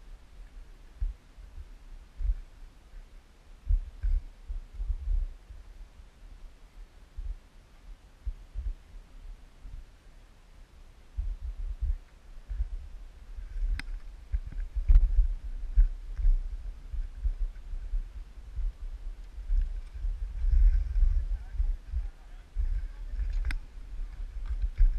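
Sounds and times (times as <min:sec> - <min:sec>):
wind rumble on microphone: 0:00.0 - 0:24.9
faint distant voices: 0:20.4 - 0:24.9.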